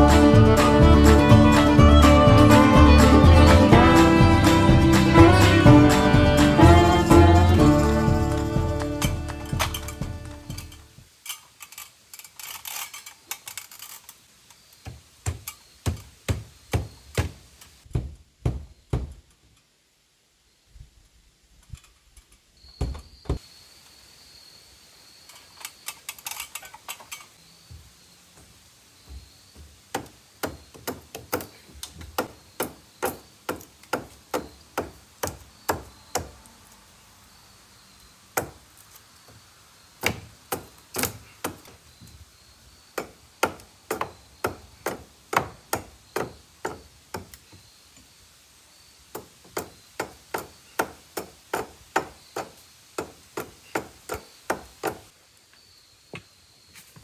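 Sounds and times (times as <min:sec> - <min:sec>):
hammer striking: 0:08.3 - 0:10.8.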